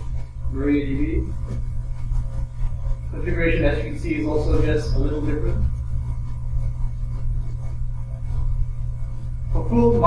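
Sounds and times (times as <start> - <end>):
faint room noise: 0.0 - 10.0
steady low hum: 0.0 - 10.0.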